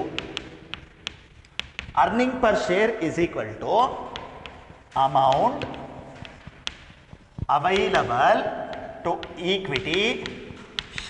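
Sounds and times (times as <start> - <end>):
chalk tapping on chalkboard: 0.0 - 11.0.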